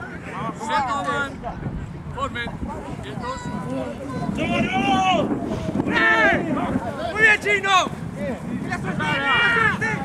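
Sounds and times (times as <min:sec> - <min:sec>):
wind rumbling on microphone: 0:00.0 - 0:10.0
men shouting: 0:08.8 - 0:10.0.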